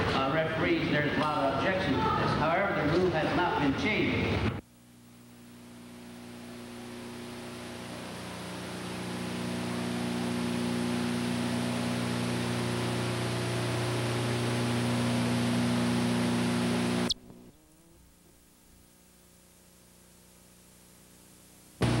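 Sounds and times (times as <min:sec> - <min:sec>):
low electrical hum: 0:00.0 - 0:22.0
videotape hiss: 0:03.9 - 0:22.0.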